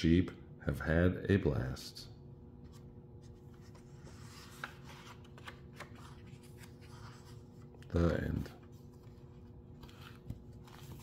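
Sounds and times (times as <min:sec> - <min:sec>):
room hum: 0:00.0 - 0:11.0
book page rustling: 0:02.7 - 0:08.0, 0:08.6 - 0:11.0.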